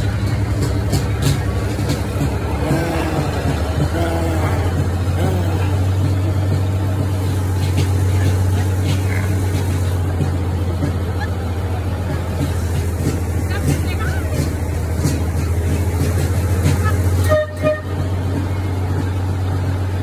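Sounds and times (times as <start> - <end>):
low engine drone: 0.0 - 20.0
person speaking: 2.5 - 6.9.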